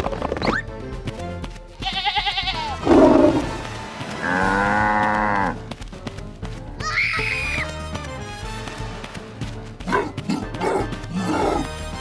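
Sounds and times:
cartoon background music: 0.0s - 12.0s
farm animal bleats: 1.8s - 3.5s, 4.2s - 5.6s.

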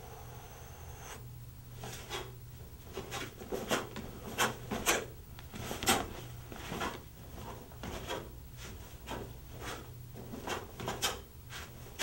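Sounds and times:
bare feet brushing a mat: 1.8s - 12.0s
karate uniform swishes and snaps: 1.8s - 12.0s.

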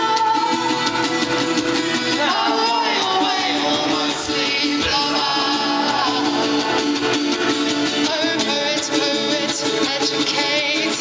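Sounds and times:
live band playing: 0.0s - 11.0s
voices singing: 2.1s - 7.1s.

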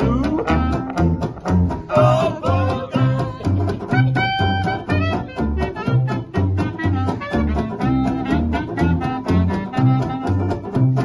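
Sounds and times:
guitar: 0.0s - 11.0s
plucked double bass: 0.0s - 11.0s
clarinet: 2.7s - 11.0s
trombone: 3.9s - 11.0s.

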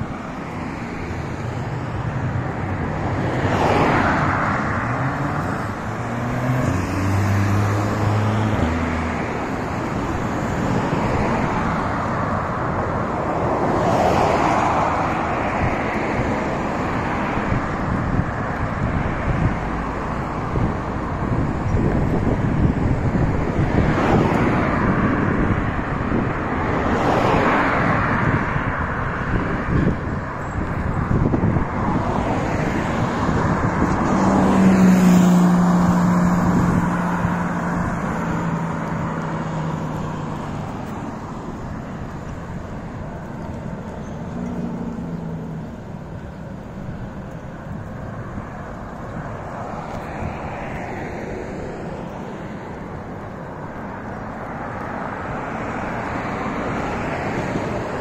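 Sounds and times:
cars driving past: 0.0s - 58.0s.

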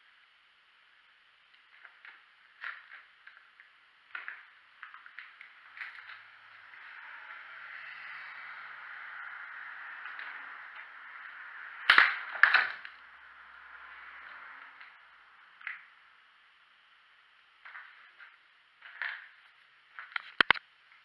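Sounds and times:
steady hiss: 0.0s - 21.0s.

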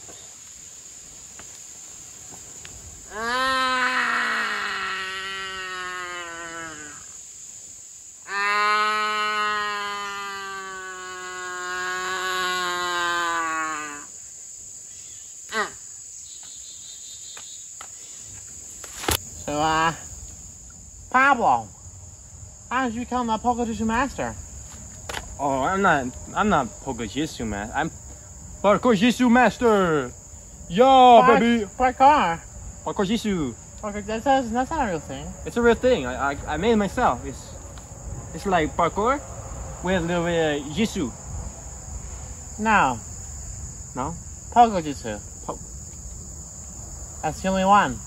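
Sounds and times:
insects buzzing: 0.0s - 48.0s.

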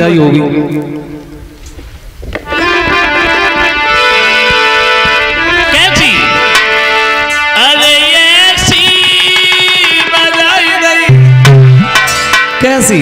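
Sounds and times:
harmonium chords: 2.4s - 13.0s
person singing: 2.5s - 12.3s.

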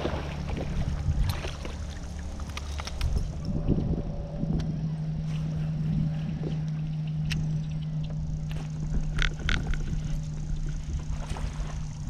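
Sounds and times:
boat motor humming: 0.0s - 12.0s
wind rumbling on microphone: 0.0s - 12.0s.

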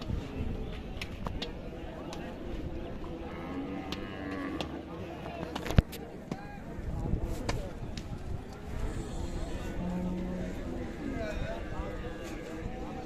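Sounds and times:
crowd chatter: 0.0s - 13.0s.

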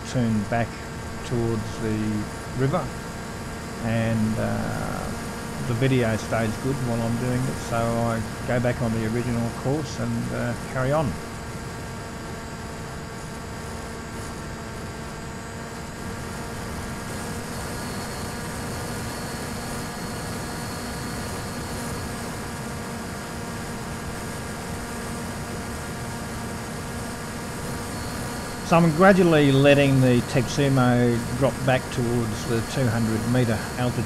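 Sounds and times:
electric motor and propeller whine: 0.0s - 34.0s.

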